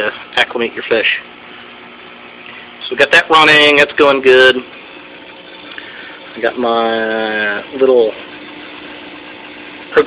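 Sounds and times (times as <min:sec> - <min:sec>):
aquarium pumps humming: 0:00.0 - 0:10.0.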